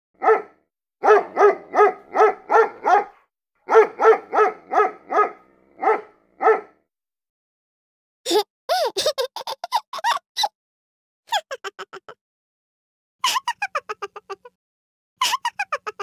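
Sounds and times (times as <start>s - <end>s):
puppy barking: 0.2s - 6.8s.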